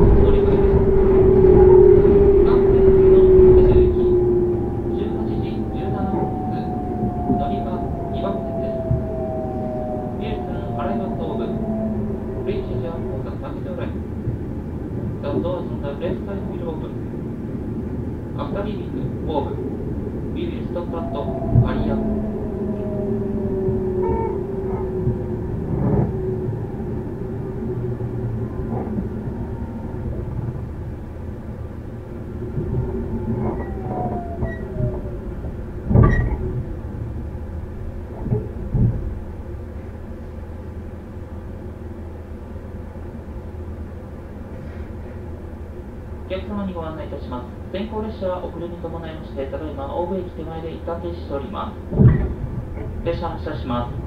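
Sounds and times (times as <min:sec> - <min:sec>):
train motor whine: 0:00.0 - 0:15.2, 0:19.0 - 0:43.2
train wheels rumbling: 0:00.0 - 0:54.0.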